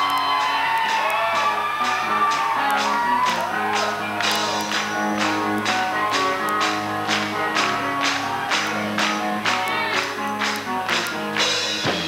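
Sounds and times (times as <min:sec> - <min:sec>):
electric guitar chords: 0:00.0 - 0:12.0
drums and cymbal hits: 0:11.2 - 0:12.0.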